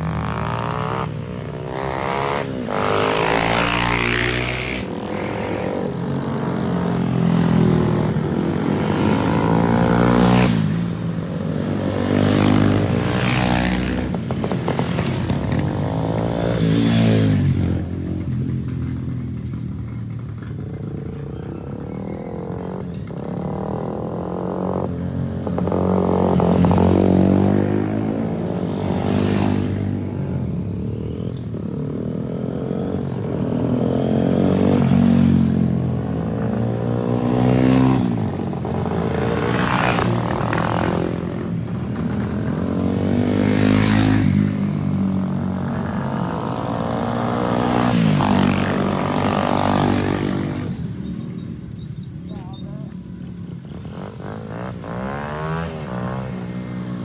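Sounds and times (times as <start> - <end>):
small motorcycles passing by: 0.0 - 57.0.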